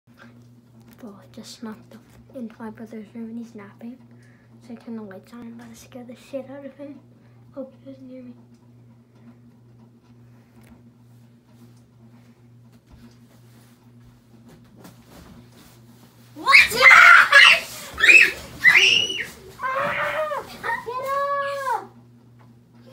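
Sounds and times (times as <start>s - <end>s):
low room hum: 0.1s - 22.9s
child screaming and crying: 16.4s - 21.9s.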